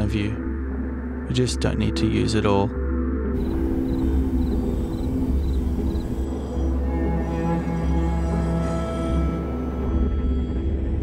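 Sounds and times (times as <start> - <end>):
faint high chirps: 3.4 - 8.7
low rumbling drone: 3.4 - 11.0.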